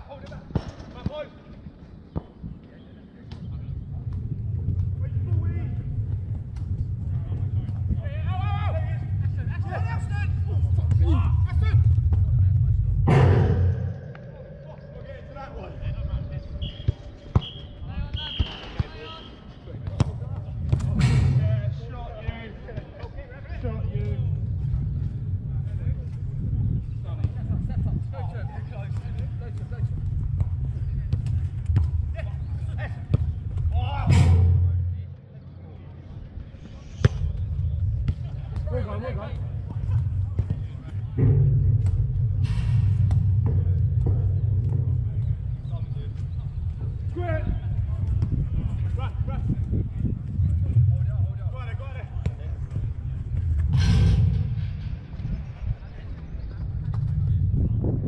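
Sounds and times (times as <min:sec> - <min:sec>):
low rumble: 0:03.6 - 0:17.9, 0:20.1 - 0:58.0
players calling out: 0:13.1 - 0:19.5.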